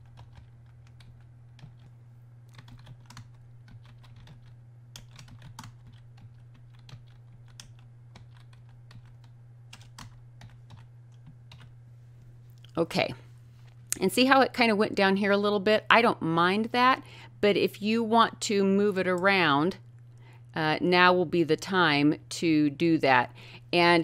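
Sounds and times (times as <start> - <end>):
computer keyboard typing: 0.0 - 1.9, 2.5 - 11.7
steady low hum: 0.0 - 24.0.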